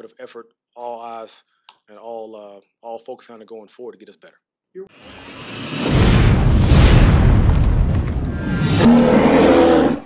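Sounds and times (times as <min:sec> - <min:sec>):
whoosh: 0:05.0 - 0:09.4.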